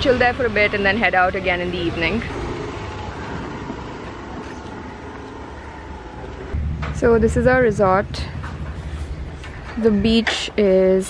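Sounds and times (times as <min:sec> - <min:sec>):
low rumble: 0:01.8 - 0:10.3.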